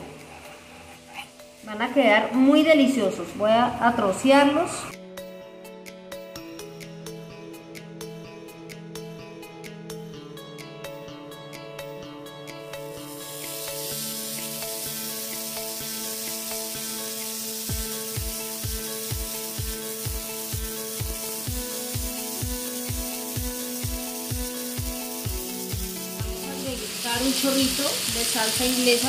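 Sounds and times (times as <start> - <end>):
background music: 0.0 - 29.0
chicken sizzling in a pan: 13.0 - 29.0
regular music beat: 17.7 - 26.6.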